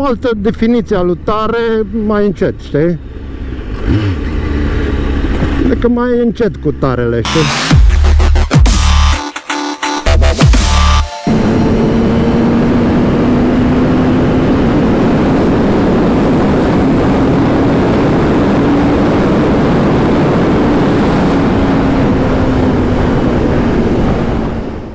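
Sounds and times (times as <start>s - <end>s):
motorcycle engine cruising: 0.0s - 7.4s, 11.3s - 24.9s
wind rush on microphone: 11.3s - 24.9s.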